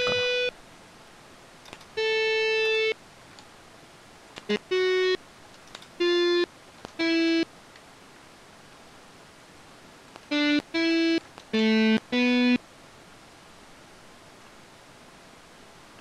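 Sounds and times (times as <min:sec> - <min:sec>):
synthesized single note tones: 0:00.0 - 0:00.5, 0:04.5 - 0:05.2, 0:10.3 - 0:12.6.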